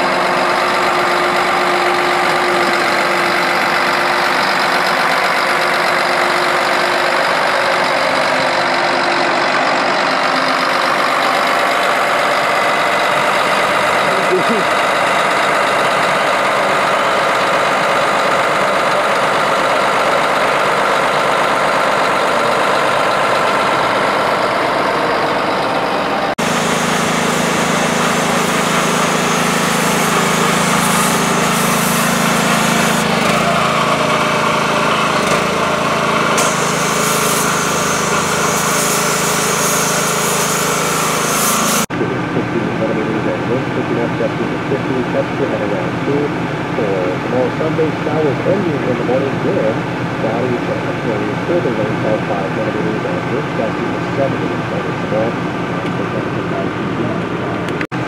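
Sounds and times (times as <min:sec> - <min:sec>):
harvester engine running: 0:00.0 - 0:58.0
pressure washer engine running: 0:00.0 - 0:58.0
pressure washer spray hiss: 0:28.0 - 0:33.0, 0:36.4 - 0:41.9.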